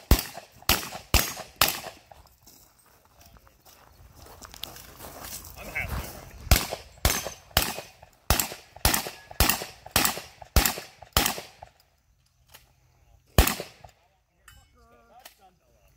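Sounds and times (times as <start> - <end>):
pistol shots: 0.0 - 2.0, 6.5 - 11.7, 13.4 - 14.0.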